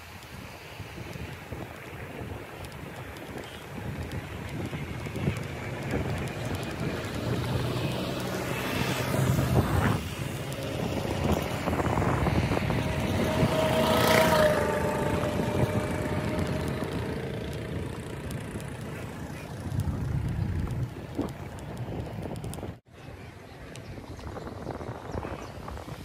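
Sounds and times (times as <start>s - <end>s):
road and wind noise: 0.0s - 26.0s
vehicle passing: 4.0s - 22.5s.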